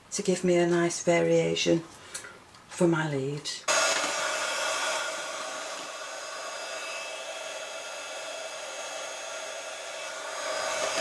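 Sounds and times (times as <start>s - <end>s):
heat tool blowing: 3.7s - 11.0s.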